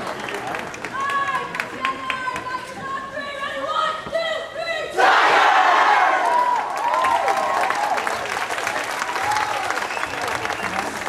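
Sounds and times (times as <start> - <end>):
group shouting a cheer: 4.9 - 8.0.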